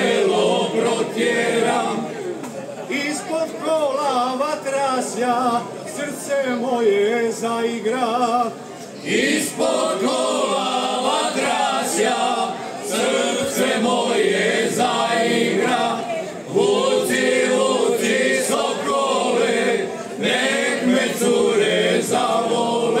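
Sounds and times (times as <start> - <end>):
men singing unaccompanied: 9.1 - 23.0.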